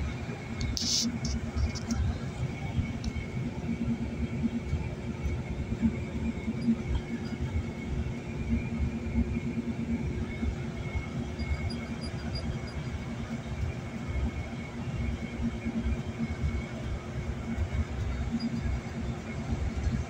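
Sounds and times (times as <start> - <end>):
car road and engine noise: 0.0 - 20.0.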